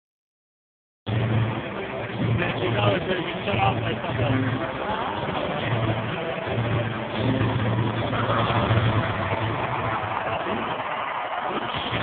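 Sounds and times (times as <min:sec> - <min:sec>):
monster truck engines rumbling: 0:01.1 - 0:12.0
crowd roaring: 0:04.6 - 0:12.0.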